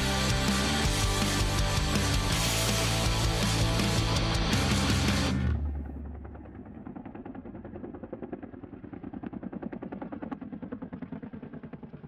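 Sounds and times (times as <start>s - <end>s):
helicopter rotor blades beating: 0.0s - 12.0s.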